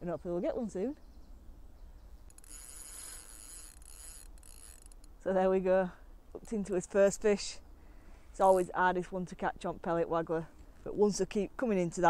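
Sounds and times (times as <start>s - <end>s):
fishing reel whirring: 2.2s - 5.2s.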